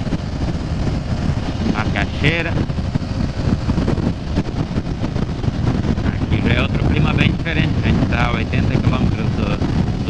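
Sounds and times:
motorcycle engine cruising: 0:00.0 - 0:10.0
wind rush on microphone: 0:00.0 - 0:10.0.

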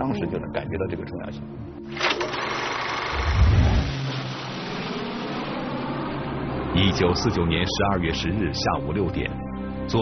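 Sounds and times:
film projector running: 0:01.9 - 0:04.7.

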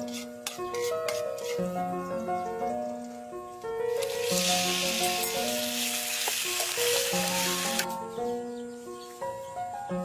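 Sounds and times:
background music: 0:00.0 - 0:10.0
chicken sizzling in hot oil: 0:04.0 - 0:07.9.

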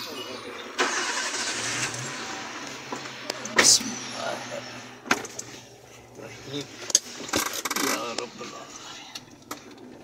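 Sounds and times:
car engine starting and idling: 0:00.3 - 0:10.0.

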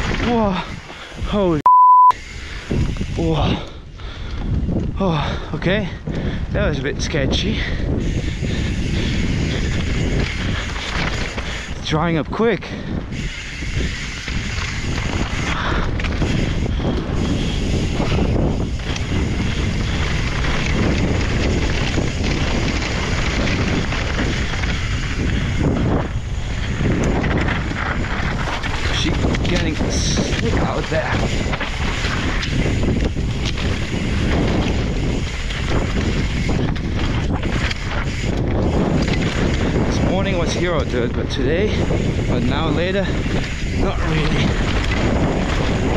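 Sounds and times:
bike tyres and frame rattling: 0:00.0 - 0:01.6, 0:02.2 - 0:45.9
wind buffeting microphone: 0:00.0 - 0:01.6, 0:02.2 - 0:45.9.

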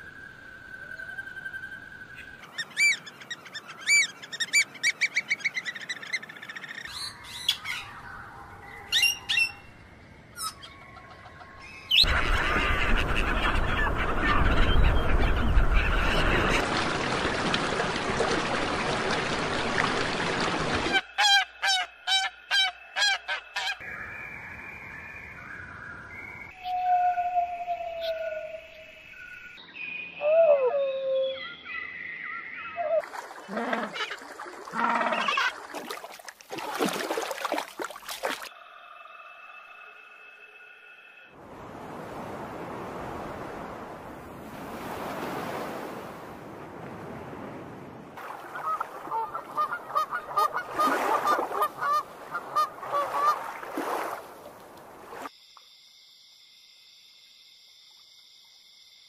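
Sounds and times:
bird calls: 0:00.8 - 0:16.6, 0:20.9 - 0:35.7, 0:48.2 - 0:53.6.

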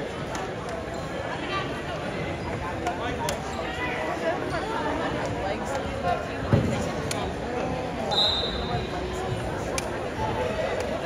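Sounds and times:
crowd chatter: 0:00.0 - 0:11.0
referee's whistle blast: 0:08.1 - 0:08.8.

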